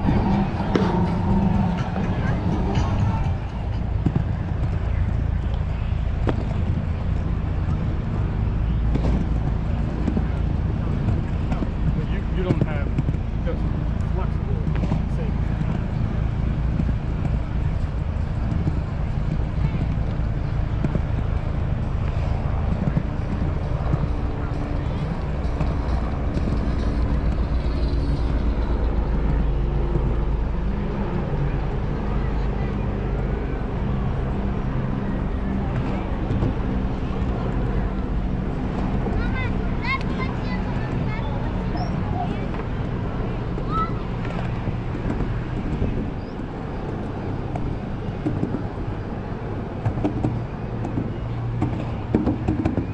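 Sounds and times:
people talking: 0:00.0 - 0:52.0
skateboard wheels rolling on wood: 0:00.0 - 0:52.9.

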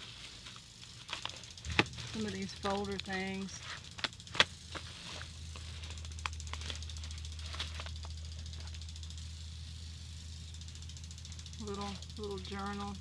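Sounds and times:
paper and folders rustling: 0:00.0 - 0:08.2
steady low hum: 0:00.0 - 0:13.0.

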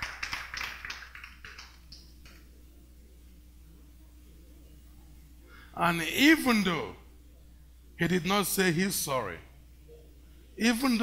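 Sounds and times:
hands clapping: 0:00.0 - 0:02.5.

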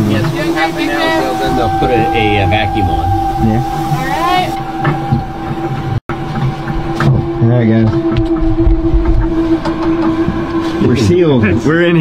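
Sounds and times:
low rumble: 0:00.1 - 0:10.5.

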